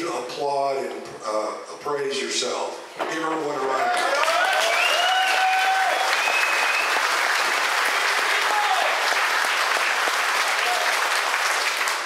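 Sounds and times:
audience applauding: 3.6 - 12.0.

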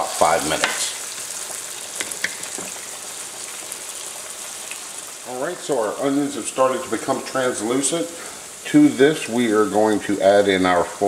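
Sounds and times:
vegetables sizzling in a pan: 0.0 - 11.0.

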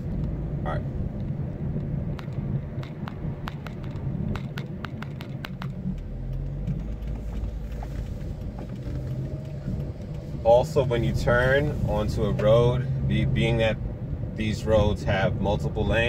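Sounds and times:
car engine and road rumble: 0.0 - 16.0.

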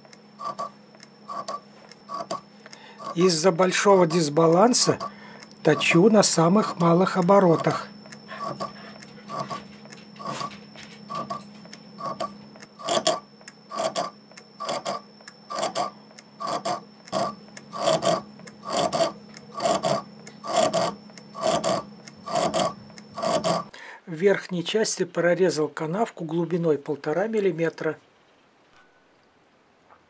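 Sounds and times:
tool scraping metal rhythmically: 0.0 - 2.4, 3.0 - 23.7
lathe humming: 0.0 - 23.7.

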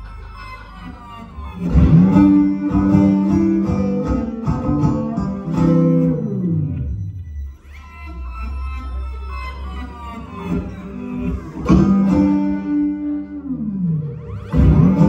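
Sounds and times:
banjo picking: 1.0 - 7.0, 9.4 - 15.0.

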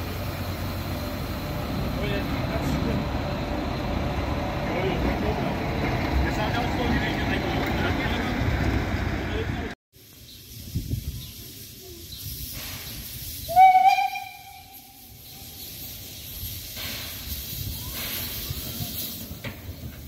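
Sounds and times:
steam locomotive running: 0.0 - 20.0
steam hissing: 10.0 - 20.0
steam whistle blast: 13.4 - 15.2.

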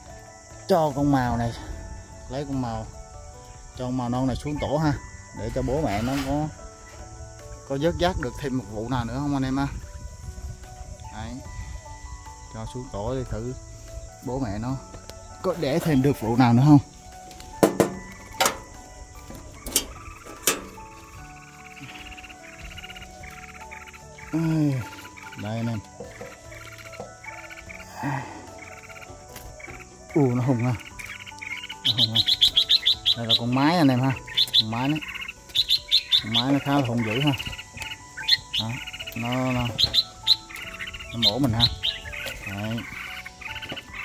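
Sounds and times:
background music with singing: 0.0 - 44.0
birds chirping rapidly: 0.0 - 44.0
metallic latch clicks: 17.6 - 18.8, 19.6 - 20.9.

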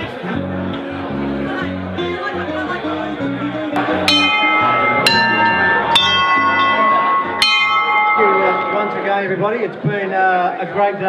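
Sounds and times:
brass bells ringing: 3.8 - 9.6.

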